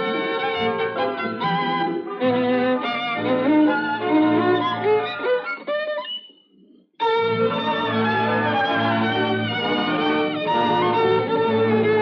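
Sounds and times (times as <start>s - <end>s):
violin playing classical piece: 7.0s - 12.0s.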